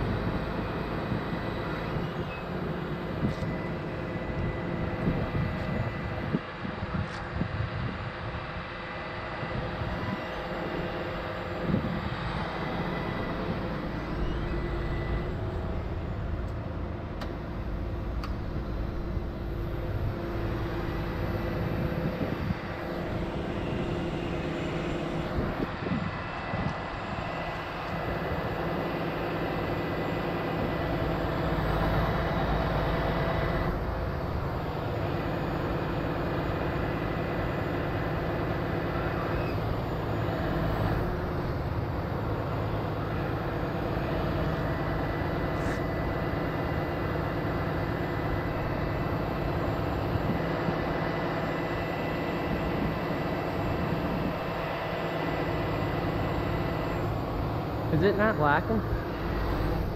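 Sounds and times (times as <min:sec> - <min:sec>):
diesel engine running: 0:00.0 - 0:59.9.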